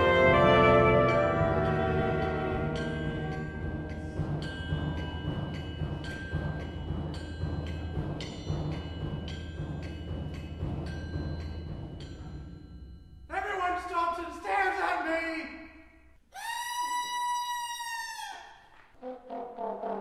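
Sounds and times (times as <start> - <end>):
struck percussion ringing notes: 0.0 - 13.8.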